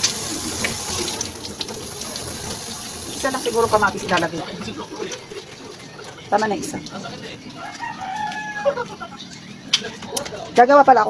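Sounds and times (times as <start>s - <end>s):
rooster crowing: 7.5s - 9.2s.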